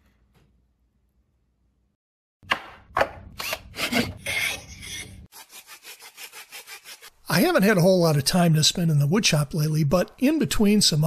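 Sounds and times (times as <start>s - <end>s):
hand tool scraping wood: 3.4s - 7.1s.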